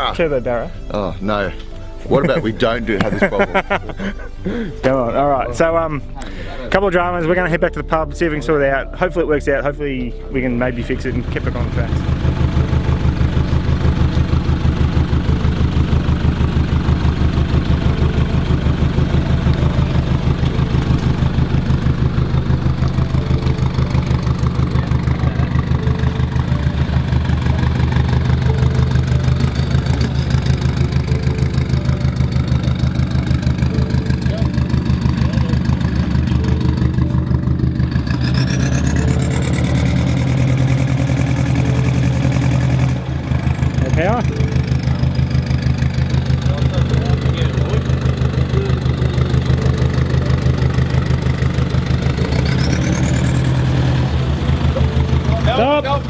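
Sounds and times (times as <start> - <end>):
engine idling: 0.0 - 56.0.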